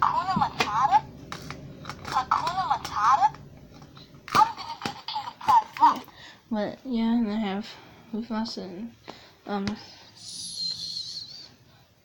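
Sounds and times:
high-pitched warbling voice: 10.2 - 11.5.

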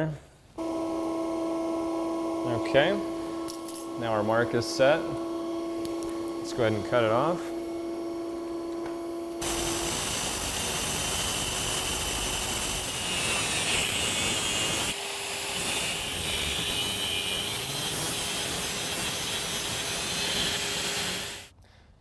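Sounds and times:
angle grinder cutting metal shaft: 0.6 - 21.5
steady motor hum: 0.6 - 21.5.

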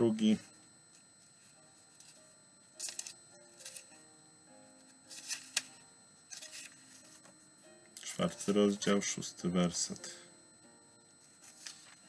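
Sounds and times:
soft background music: 0.0 - 12.0
book pages rustling: 4.8 - 7.3, 11.2 - 12.0.

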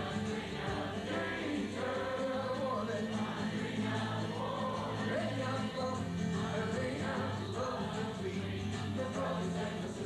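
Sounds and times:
acoustic guitar strummed: 0.0 - 10.0
audience singing along: 0.0 - 10.0
man singing folk song: 0.0 - 10.0.

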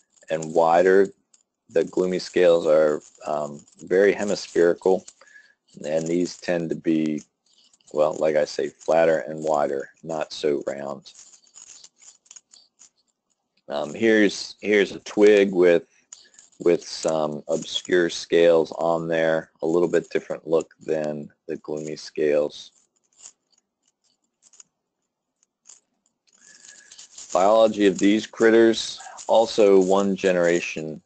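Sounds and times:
faint noise: 0.0 - 1.1, 1.7 - 13.0, 13.7 - 23.6, 25.4 - 31.0
person speaking: 0.0 - 1.1, 1.7 - 7.2, 7.9 - 12.6, 13.7 - 22.7, 26.4 - 31.0
faint small clicks and rustles: 0.0 - 31.0.

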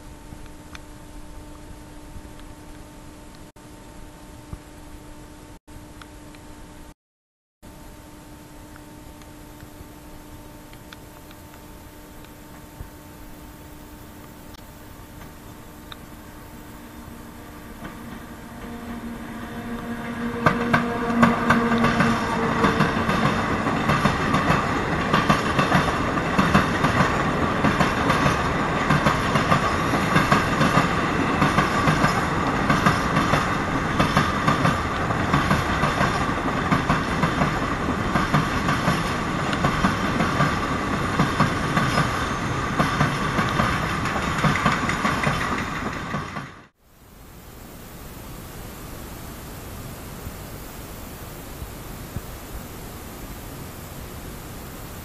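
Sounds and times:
electric locomotive hum: 0.0 - 7.0, 7.7 - 55.0
wheels clacking over rail joints: 19.8 - 46.7.

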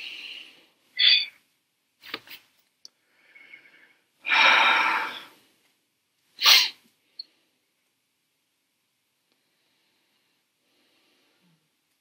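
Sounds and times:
sharp burst of breath: 3.3 - 5.4, 6.4 - 6.8.

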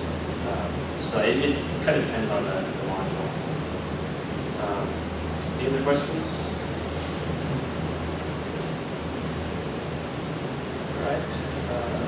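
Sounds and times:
low even hum: 0.0 - 12.0
steady hiss: 0.0 - 12.0.

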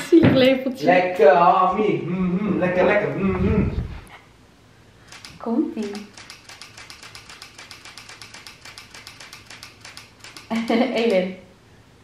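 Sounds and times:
rapid light clicks: 5.1 - 11.2.

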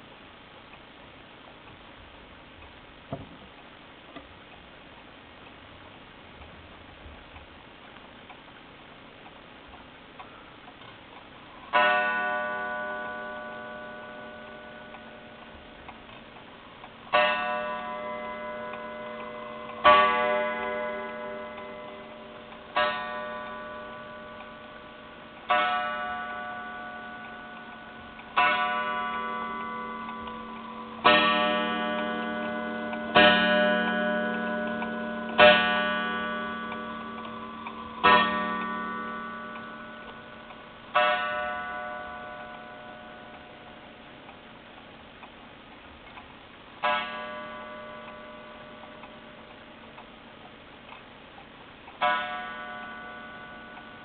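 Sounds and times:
clock ticking faintly: 0.0 - 54.0
wall clock striking the hour: 7.2 - 54.0.

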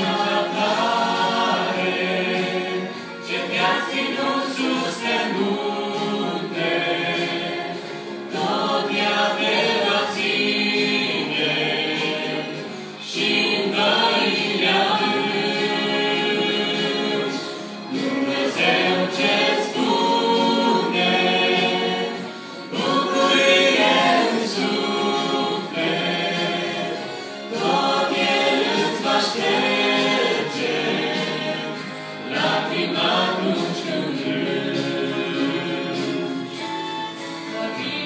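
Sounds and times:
mixed group singing gospel in harmony: 0.0 - 38.0.

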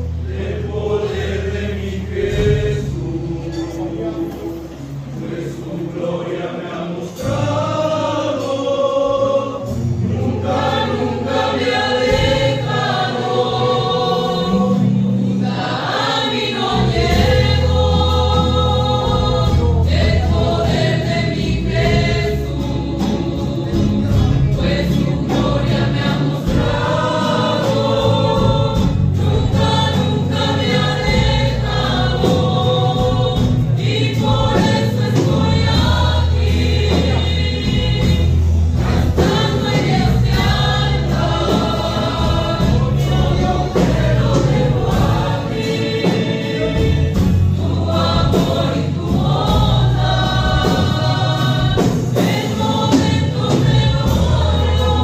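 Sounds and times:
group singing gospel song: 0.0 - 55.0
bass line: 15.9 - 55.0.

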